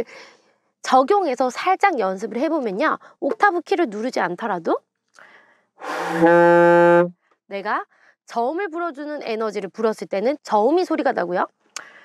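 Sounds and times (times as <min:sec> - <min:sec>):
alto saxophone held low note: 0:05.8 - 0:07.1.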